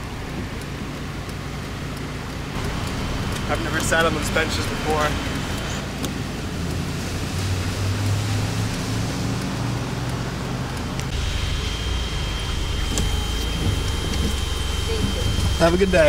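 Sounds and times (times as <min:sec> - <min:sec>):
car engine idling: 0:00.0 - 0:16.0
road traffic noise: 0:00.0 - 0:16.0
thin steady high tone: 0:11.1 - 0:16.0.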